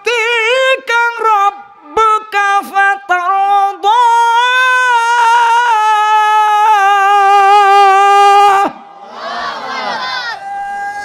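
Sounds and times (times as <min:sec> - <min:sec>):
man singing long note: 0:00.0 - 0:08.8
audience calling out: 0:09.0 - 0:11.0.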